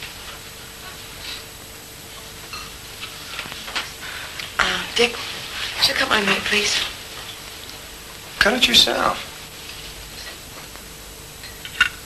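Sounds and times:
steady background hiss: 0:00.0 - 0:12.0.

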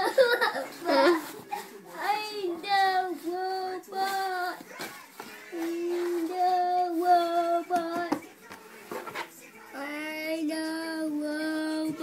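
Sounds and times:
young child singing: 0:02.0 - 0:08.4, 0:09.7 - 0:12.0.

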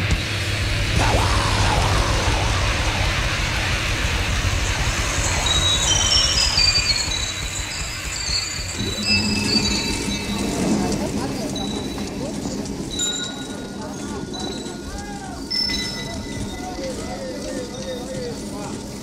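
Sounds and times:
death metal instrumental: 0:00.0 - 0:06.7.

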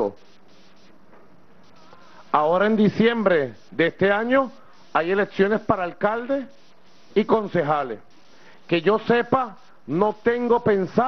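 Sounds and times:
man speaking: 0:00.0 - 0:00.2, 0:02.3 - 0:08.1, 0:08.7 - 0:11.0
faint background hiss: 0:00.0 - 0:11.0.

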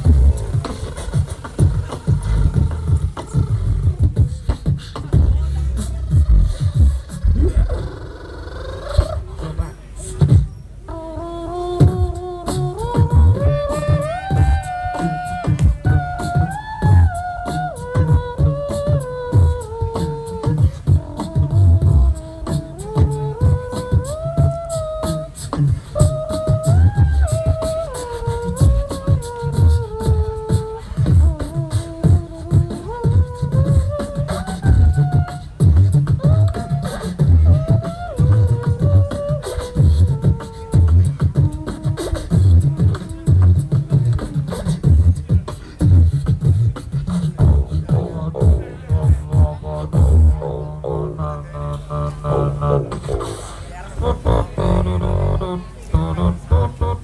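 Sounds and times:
group beatboxing: 0:00.0 - 0:57.0
held vocal melody note: 0:00.0 - 0:57.0.

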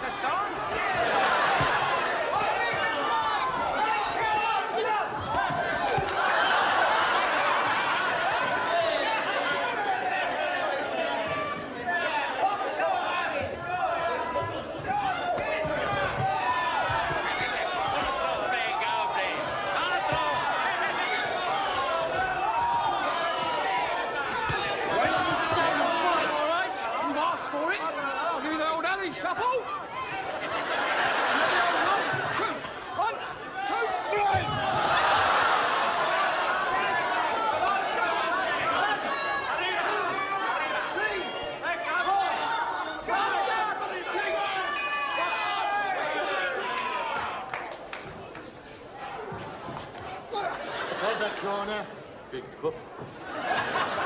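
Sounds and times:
crowd shouting and cheering: 0:00.0 - 0:54.0.

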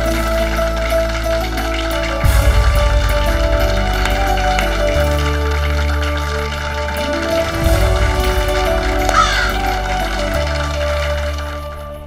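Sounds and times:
dramatic background score: 0:01.7 - 0:12.0.

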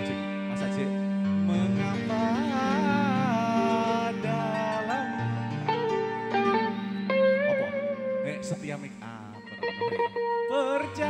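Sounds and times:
lead guitar melody: 0:00.0 - 0:11.0.

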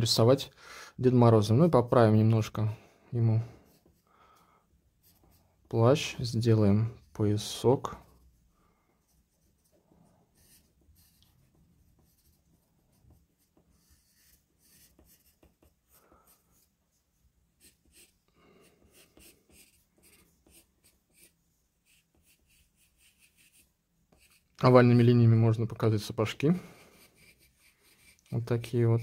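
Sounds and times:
pencil scratching on paper: 0:03.6 - 0:04.0, 0:05.0 - 0:05.4, 0:09.0 - 0:17.0, 0:17.6 - 0:24.6, 0:26.6 - 0:29.0.

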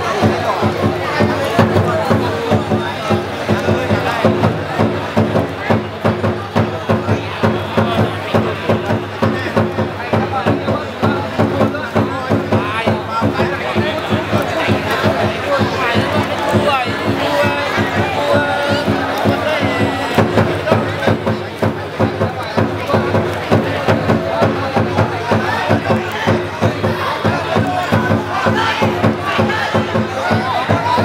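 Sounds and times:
crowd chatter: 0:00.0 - 0:31.0
steady drumbeat: 0:00.0 - 0:31.0.

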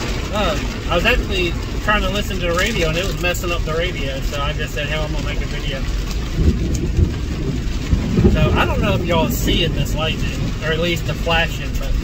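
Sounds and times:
heavy rain: 0:00.0 - 0:12.0
truck engine and tyres rumbling: 0:00.0 - 0:12.0
short low thumps: 0:05.2 - 0:11.2.

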